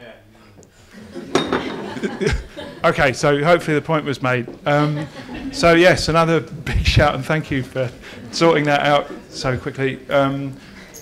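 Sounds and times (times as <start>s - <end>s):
glasses or cutlery clinking: 1.3s - 2.0s
murmur of audience voices: 4.6s - 11.0s.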